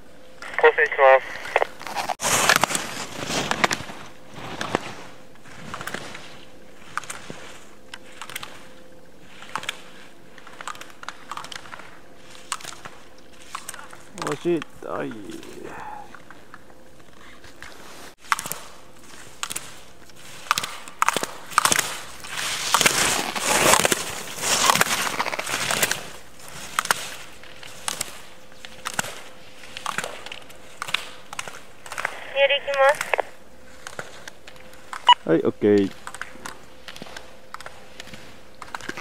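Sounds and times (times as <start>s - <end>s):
ski edges scraping on snow: 1.8s - 8.6s, 21.7s - 28.2s
person calling out: 14.8s - 16.1s, 32.2s - 33.3s.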